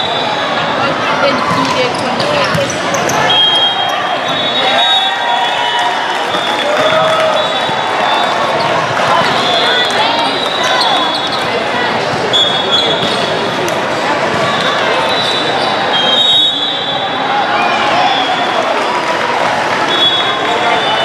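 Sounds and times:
many voices talking: 0.0 - 21.0
balls bouncing: 1.2 - 3.5.

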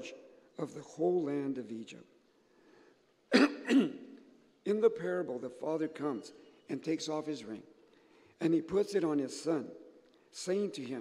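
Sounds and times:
man clearing his throat: 3.3 - 4.0.

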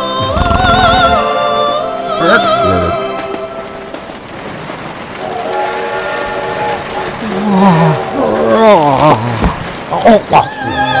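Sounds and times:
rushing rumble: 0.0 - 11.0.

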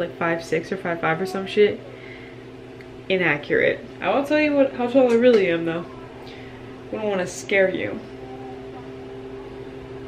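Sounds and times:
fan hum with tones: 0.0 - 10.0.

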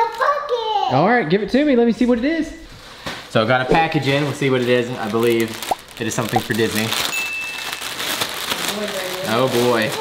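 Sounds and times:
plastic bag crinkling and tearing: 4.0 - 10.0.

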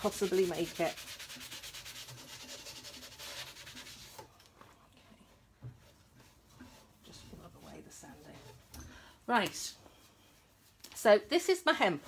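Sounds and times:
hand sanding wood: 0.0 - 4.3, 5.4 - 8.7, 10.4 - 12.0
soft rubbing: 0.0 - 12.0.

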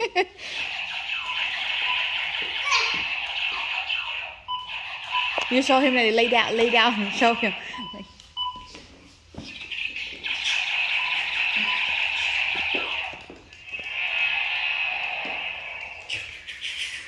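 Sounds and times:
toy gun buzzy electronic blasts: 0.4 - 7.8, 9.5 - 17.0.

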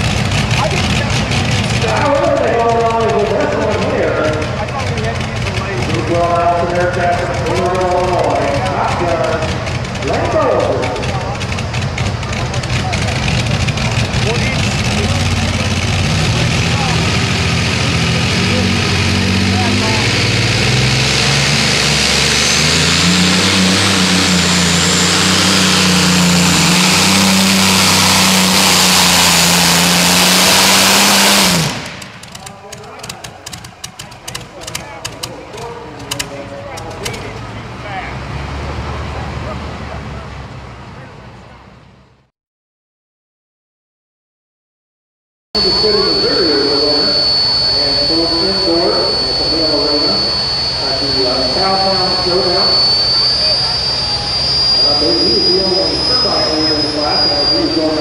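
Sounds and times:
tractor engine at full throttle: 0.0 - 42.2, 45.6 - 58.0.

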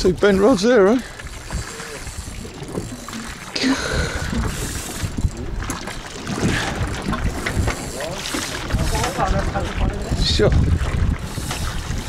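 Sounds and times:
boat engine rumble: 0.0 - 12.0
wind buffeting microphone: 0.0 - 12.0.

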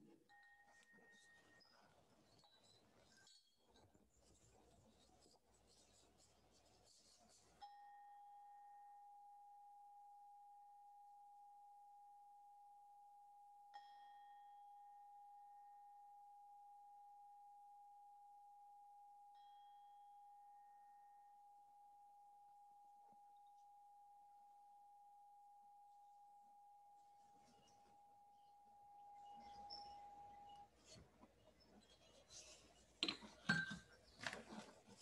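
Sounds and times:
meditation bell ringing: 13.7 - 16.0.

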